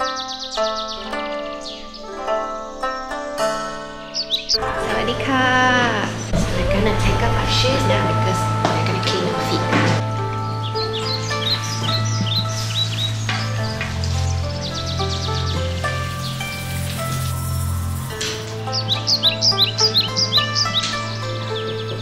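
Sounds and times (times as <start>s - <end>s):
birdsong chirps: 0.0s - 22.0s
calm instrumental music: 0.0s - 22.0s
low drone: 3.7s - 22.0s.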